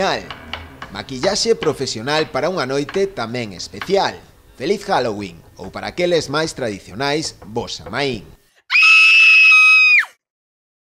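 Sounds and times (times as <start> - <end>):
loud high-pitched scream: 8.7 - 10.2.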